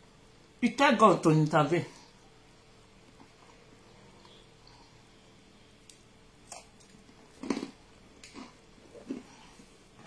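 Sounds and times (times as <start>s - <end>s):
person chewing biscuit: 5.8s - 9.8s.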